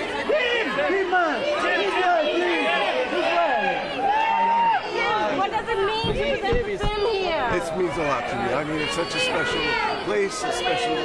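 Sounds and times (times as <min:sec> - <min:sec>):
crowd talking and calling: 0:00.0 - 0:11.0.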